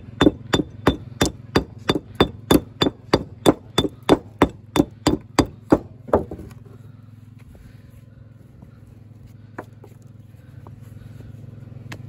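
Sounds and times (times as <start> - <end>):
hammer knocking on stone: 0.2 - 6.5.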